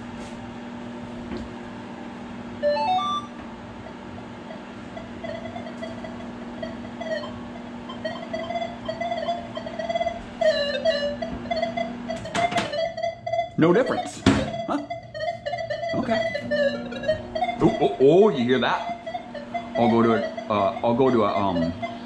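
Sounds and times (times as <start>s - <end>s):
microwave oven humming: 0.0s - 22.0s
metal detector beeps: 2.6s - 3.4s, 4.5s - 22.0s
metal detector wavering tone: 2.6s - 22.0s.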